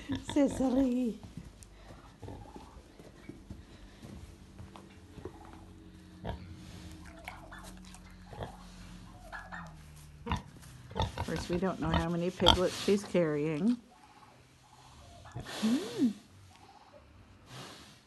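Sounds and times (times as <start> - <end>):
pig grunting and sniffing: 0.0 - 18.0.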